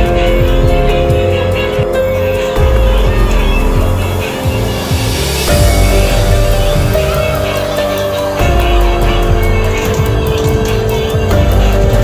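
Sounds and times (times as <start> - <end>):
music with heavy bass beat: 0.0 - 12.0.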